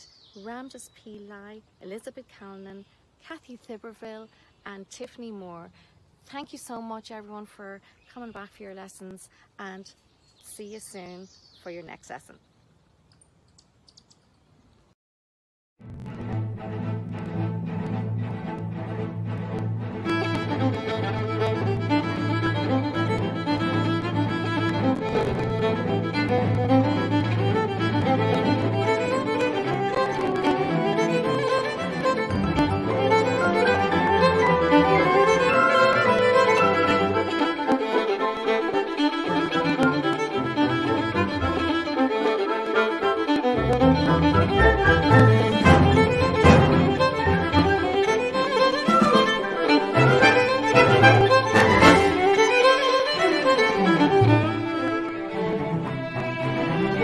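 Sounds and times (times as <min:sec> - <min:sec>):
low sustained string notes: 0:15.8 - 0:57.0
violin melody: 0:15.8 - 0:57.0.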